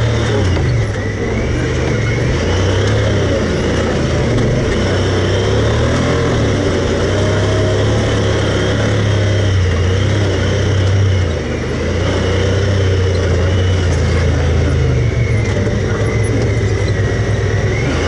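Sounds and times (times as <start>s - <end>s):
rumble and rattle from ride: 0.0s - 18.0s
vehicle engine running: 0.0s - 18.0s.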